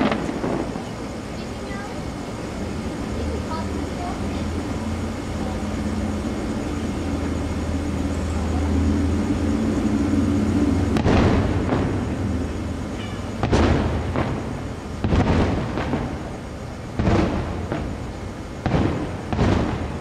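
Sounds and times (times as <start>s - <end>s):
loud firework burst: 0.0s - 20.0s
low rumble: 3.8s - 20.0s.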